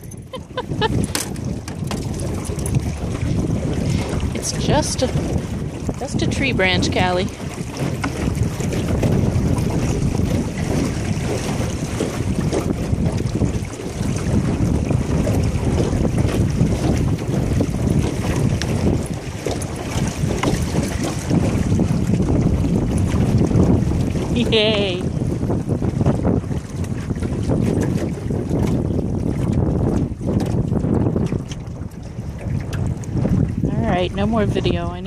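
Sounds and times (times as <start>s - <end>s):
water splashing along boat hull: 0.0s - 35.0s
wind buffeting microphone: 0.0s - 35.0s.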